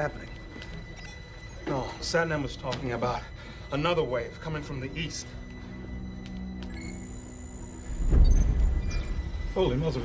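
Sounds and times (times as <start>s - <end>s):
film score music: 0.0s - 10.0s
steady electronic tones: 0.0s - 10.0s.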